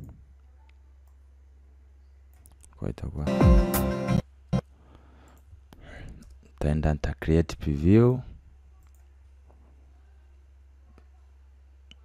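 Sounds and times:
person speaking: 2.6s - 4.0s.

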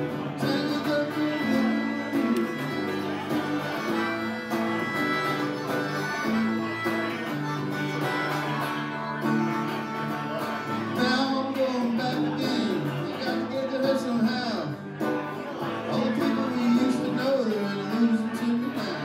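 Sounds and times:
harmonica playing lead notes: 0.0s - 19.0s
strummed electric guitar: 0.0s - 19.0s.

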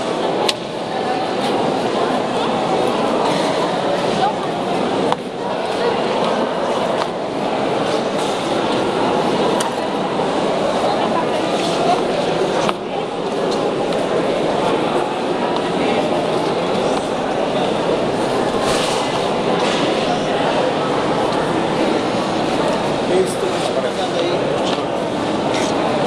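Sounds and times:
crowd murmur in large hall: 0.0s - 26.0s.

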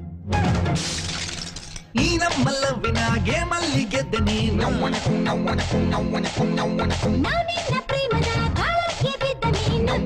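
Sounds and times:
person singing: 2.0s - 10.0s.

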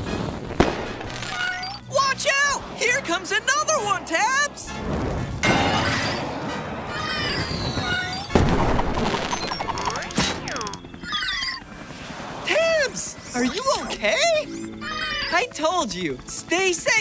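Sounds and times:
firework bang: 0.0s - 1.3s, 4.8s - 6.5s, 7.4s - 9.4s
crackling: 0.0s - 11.0s
background music: 0.0s - 17.0s.

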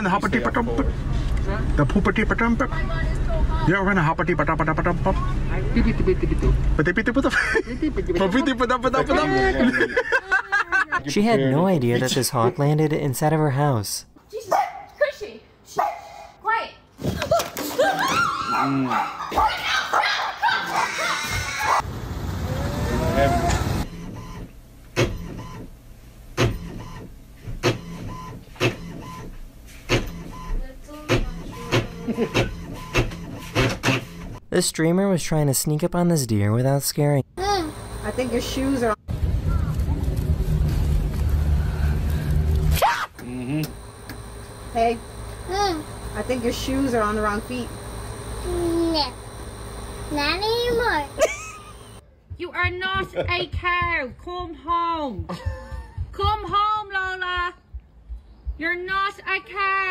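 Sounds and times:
low rumble of outdoor noise: 0.0s - 17.0s, 19.6s - 26.4s, 34.1s - 59.9s
small dog barking: 14.4s - 15.0s, 15.7s - 16.4s, 18.4s - 21.8s.

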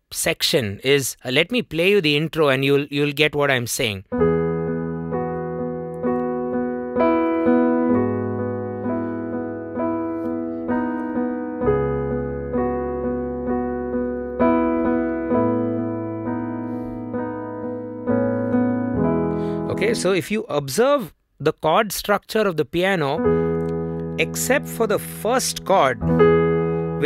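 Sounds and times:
digital piano ballad chords: 4.1s - 20.3s, 23.2s - 27.0s.

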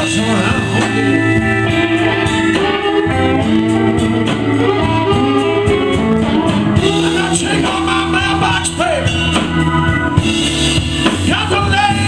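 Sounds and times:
electric guitar: 0.0s - 12.0s
live band playing instrumental: 0.0s - 12.0s.

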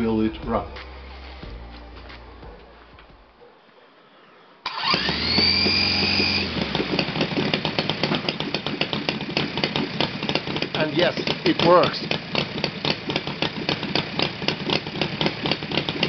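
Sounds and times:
electric starter whine: 0.0s - 3.4s, 4.6s - 16.0s
model engine running unevenly: 4.8s - 16.0s.

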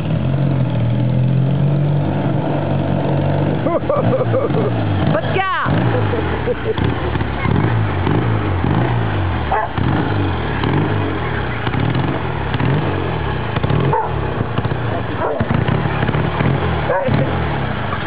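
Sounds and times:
motorcycle engine revving: 0.0s - 18.0s.

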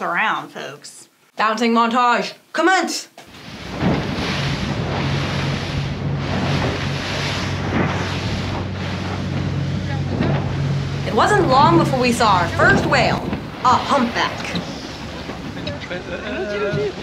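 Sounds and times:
hull spray: 3.2s - 17.0s
boat engine drone: 3.3s - 17.0s.

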